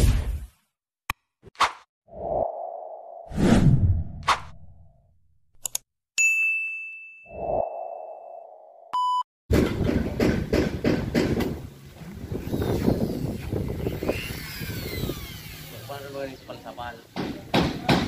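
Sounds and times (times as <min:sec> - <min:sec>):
short beep: 0:08.9 - 0:09.2.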